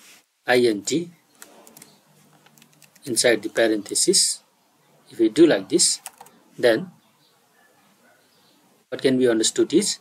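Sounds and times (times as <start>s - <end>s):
faint computer keyboard keystrokes: 1.4s - 3.1s, 6.0s - 6.3s.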